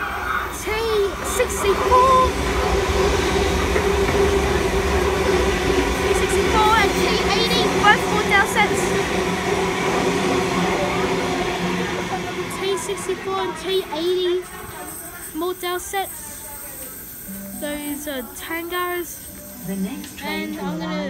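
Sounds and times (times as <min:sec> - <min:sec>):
train wheels on rails: 0:00.0 - 0:20.7.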